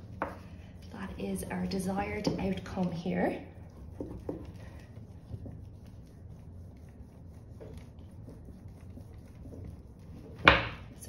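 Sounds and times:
spoon rubbing paper: 2.5s - 11.0s.

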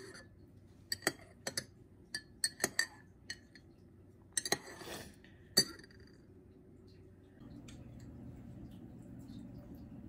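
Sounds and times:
metal spoon clinking in ceramic mug: 0.0s - 3.7s, 4.3s - 4.8s, 5.5s - 6.2s
spoon swishing stir: 4.4s - 5.2s.

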